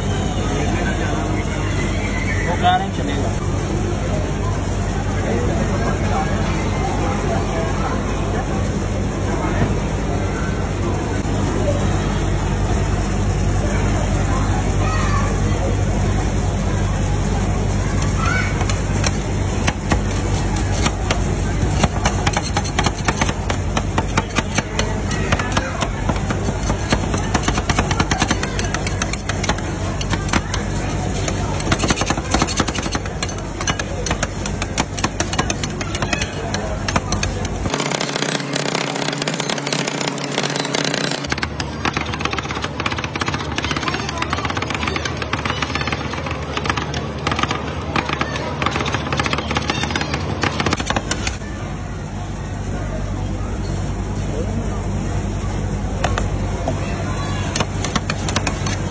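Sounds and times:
metal spatulas chopping on steel: 0:18.6 - 0:51.2.

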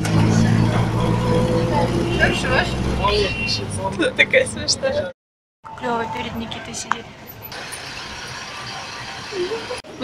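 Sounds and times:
minibus engine and road rumble: 0:00.0 - 0:10.0.

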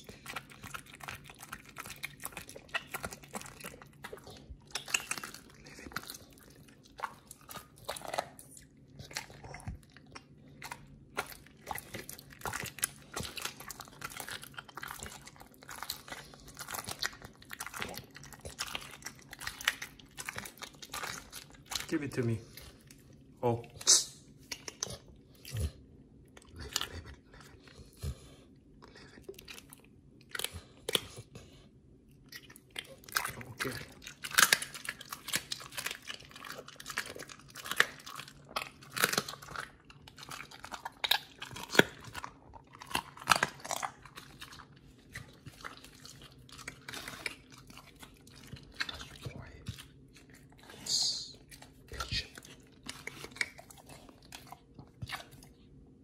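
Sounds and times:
dog chewing and crunching meat: 0:00.0 - 0:56.0
bone cracking: 0:00.2 - 0:22.0, 0:32.2 - 0:50.1.

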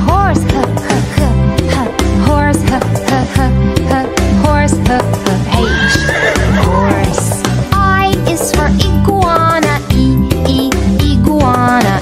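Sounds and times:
bouncy children's song music: 0:00.0 - 0:12.0
horse whinny: 0:05.5 - 0:07.3.

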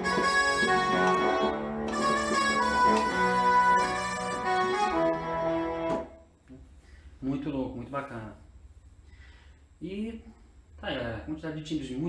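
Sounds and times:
synthesized brass chords: 0:00.0 - 0:06.4.

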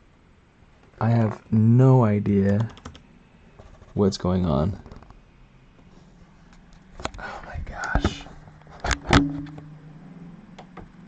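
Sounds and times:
sharp knocks: 0:08.8 - 0:09.7.

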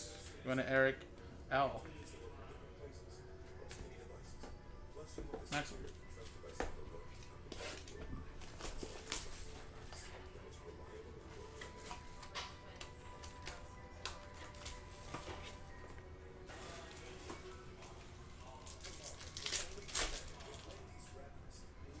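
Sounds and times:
faint background music: 0:00.0 - 0:22.0
plastic wrap crinkling: 0:16.5 - 0:17.6, 0:18.4 - 0:21.0
foil card pack crackling: 0:18.4 - 0:20.9.

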